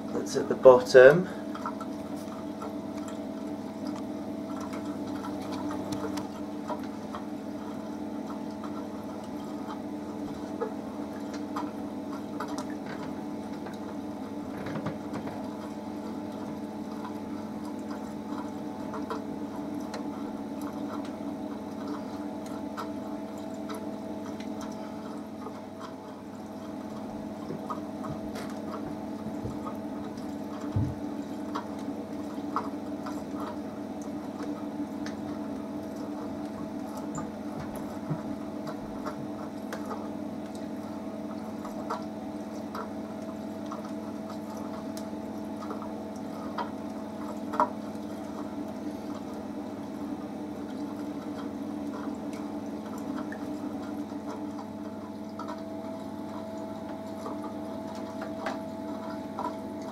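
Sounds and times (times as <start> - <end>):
aquarium pump hum: 0.0 - 59.9
water trickling and dripping: 0.0 - 59.9.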